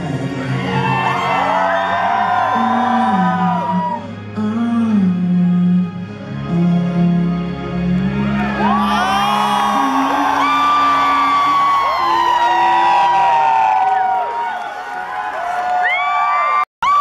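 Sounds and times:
audience cheering and shrieking: 0:00.3 - 0:04.1, 0:08.2 - 0:17.0.

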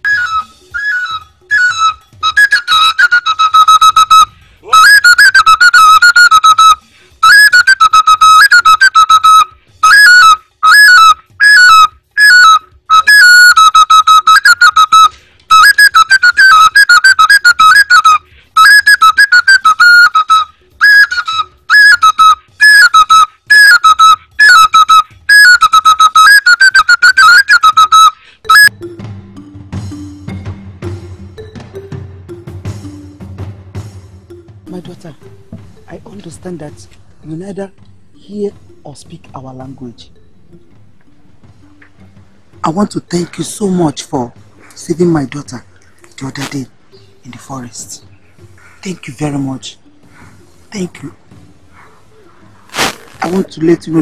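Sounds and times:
shrill wooden flute phrases: 0:00.0 - 0:28.7.

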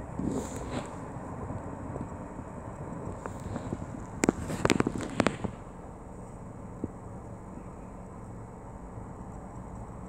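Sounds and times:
car engine idling: 0:00.0 - 0:10.0
sharp clicks and knocks: 0:02.9 - 0:05.6.

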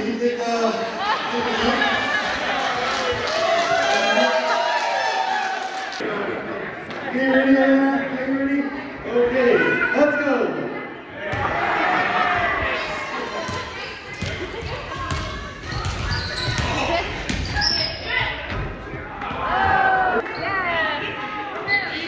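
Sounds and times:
basketball bouncing on wooden floor: 0:14.2 - 0:17.6.

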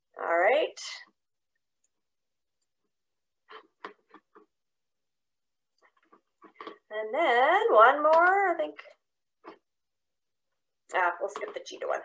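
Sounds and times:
person speaking: 0:06.9 - 0:08.9, 0:10.9 - 0:12.0.

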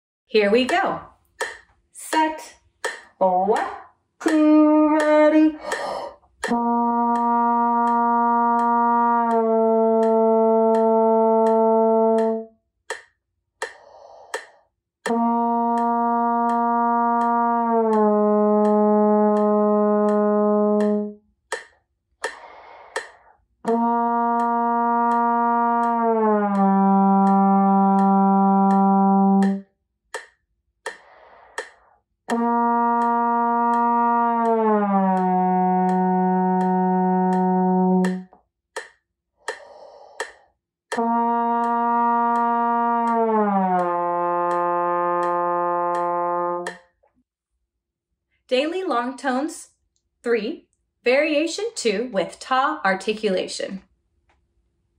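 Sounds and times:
steady ticking: 0:00.4 - 0:47.0
short breaths: 0:05.6 - 0:06.4, 0:13.7 - 0:14.7, 0:22.2 - 0:23.4, 0:30.9 - 0:32.0, 0:39.4 - 0:40.6
trombone sliding notes: 0:06.4 - 0:12.5, 0:15.1 - 0:21.2, 0:22.2 - 0:29.6, 0:32.3 - 0:38.3, 0:40.9 - 0:46.8.

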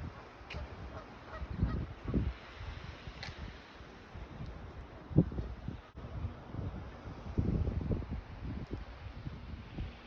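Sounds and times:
wind rumble on microphone: 0:00.0 - 0:10.0
goose honking: 0:00.6 - 0:01.8.

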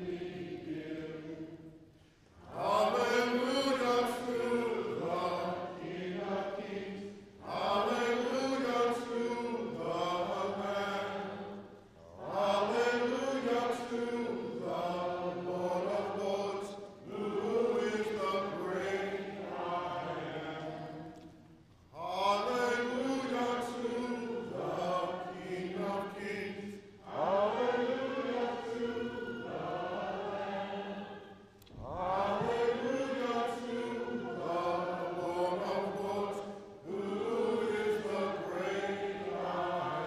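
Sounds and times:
man singing: 0:02.6 - 0:05.3.

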